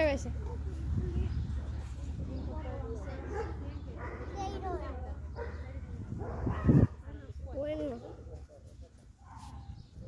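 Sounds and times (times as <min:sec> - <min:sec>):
children's voices and calls: 0:00.0 - 0:08.6.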